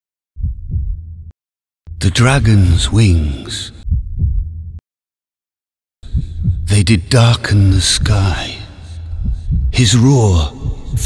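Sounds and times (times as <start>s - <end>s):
deep low double thud: 0.4s - 1.3s, 3.8s - 4.8s, 6.1s - 6.7s, 9.2s - 9.8s, 10.6s - 11.0s.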